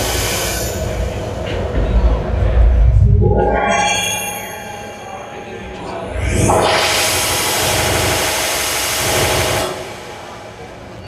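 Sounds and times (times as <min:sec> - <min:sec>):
dense electronic noise: 0:00.0 - 0:11.0.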